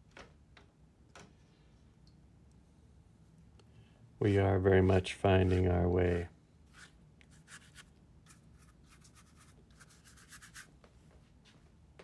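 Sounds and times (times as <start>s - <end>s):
brush swishing across paper: 4.7s - 5.8s, 6.7s - 10.8s.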